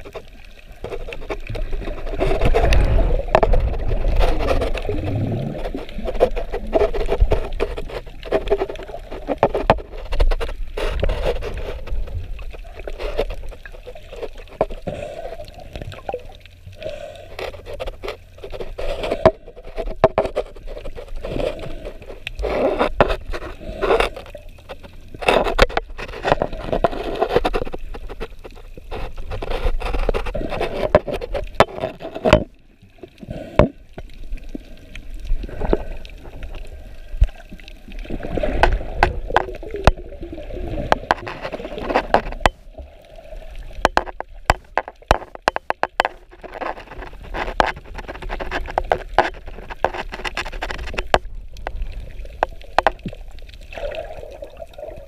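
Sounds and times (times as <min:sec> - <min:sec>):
muffled water sloshing: 0:00.0 - 0:55.0
camera housing knocks and scrapes: 0:43.8 - 0:51.2.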